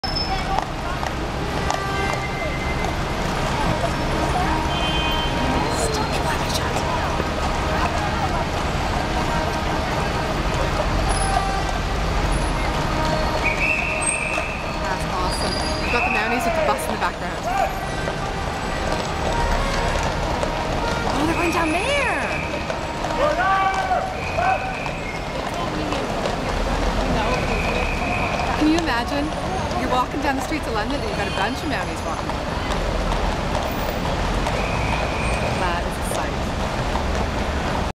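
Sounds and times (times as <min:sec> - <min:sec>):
people talking: 0:00.0 - 0:13.4, 0:14.7 - 0:19.6, 0:21.0 - 0:32.8, 0:35.5 - 0:36.5
bus and lorry engine rumble: 0:00.0 - 0:37.9
city street traffic: 0:00.0 - 0:37.9
voices of onlookers: 0:00.0 - 0:37.9.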